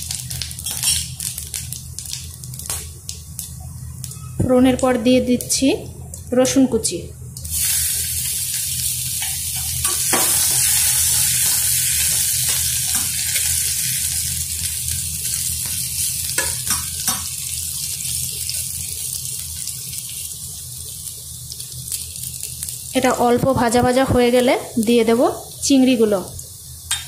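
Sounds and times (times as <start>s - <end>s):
garlic sizzling in hot oil: 0.0s - 5.8s, 7.4s - 27.0s
steady low hum: 0.0s - 19.0s.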